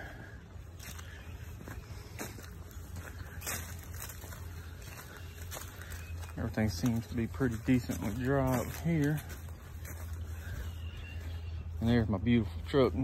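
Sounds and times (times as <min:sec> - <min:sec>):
footsteps on dry leaves: 0:00.0 - 0:13.0.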